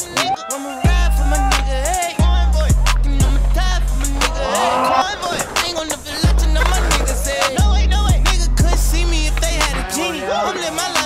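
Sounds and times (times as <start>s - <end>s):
hip hop beat: 0.0s - 11.0s
skateboard wheels rolling on concrete: 0.0s - 11.0s.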